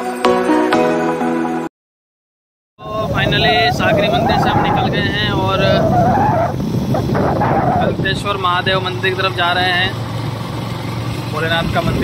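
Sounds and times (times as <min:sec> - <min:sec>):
man talking: 0:02.8 - 0:06.0, 0:07.8 - 0:10.0, 0:11.3 - 0:12.0
wind and road noise: 0:02.8 - 0:12.0.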